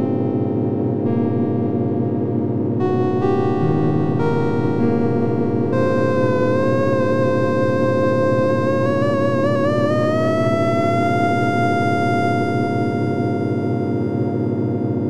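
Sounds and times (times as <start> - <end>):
low synthesizer drone: 0.0 - 15.0
synthesizer lead tone: 2.8 - 15.0.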